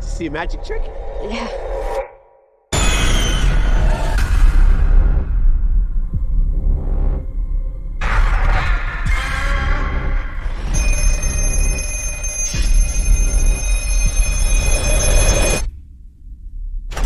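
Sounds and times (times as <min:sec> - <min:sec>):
horror trailer music: 0:00.0 - 0:17.0
deep bass rumble: 0:03.6 - 0:10.8, 0:12.9 - 0:17.0
old telephone bell ringing: 0:10.8 - 0:15.7.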